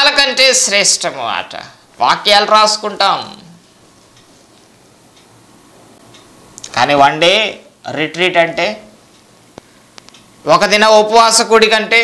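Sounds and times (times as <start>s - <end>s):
faint ticks: 9.1s - 10.3s.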